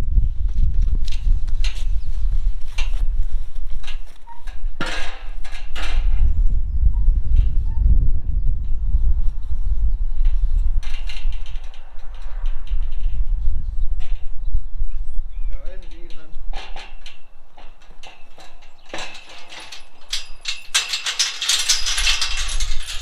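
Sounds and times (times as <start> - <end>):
steady low rumble: 0.0 - 17.8
metal gate rattling and clanking: 3.8 - 7.8, 10.2 - 14.4, 15.4 - 23.0.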